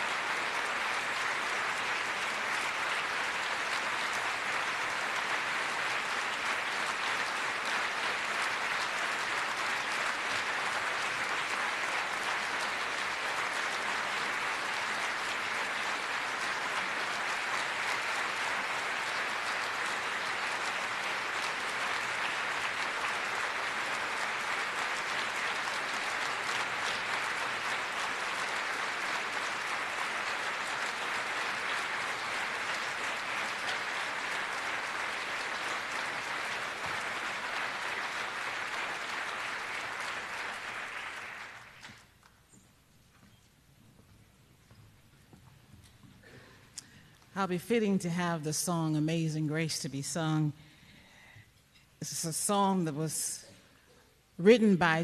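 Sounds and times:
audience applause: 0:00.0 - 0:42.1.

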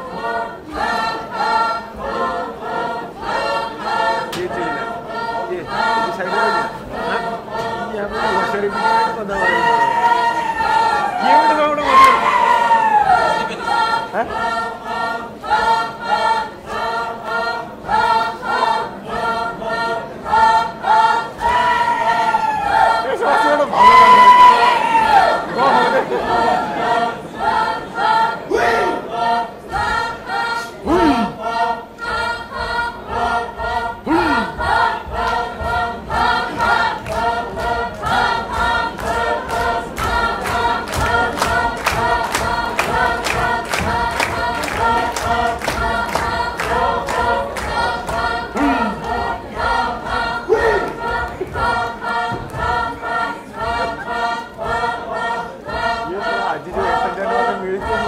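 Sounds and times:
group singing folk song: 0:00.0 - 0:58.0.

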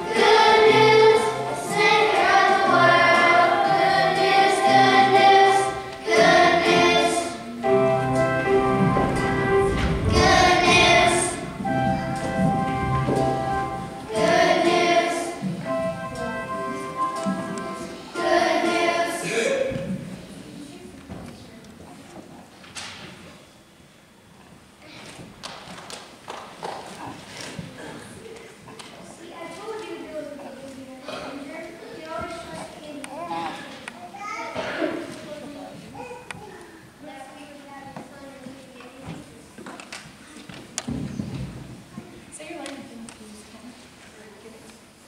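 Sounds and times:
children's choir singing: 0:00.0 - 0:20.4
footsteps on wooden stage: 0:08.6 - 0:16.4, 0:40.4 - 0:42.2
faint murmuring: 0:26.8 - 0:41.3.

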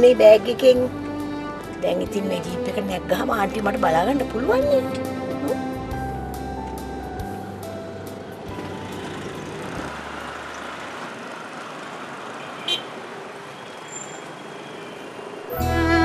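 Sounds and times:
road traffic passing: 0:00.0 - 0:16.0.

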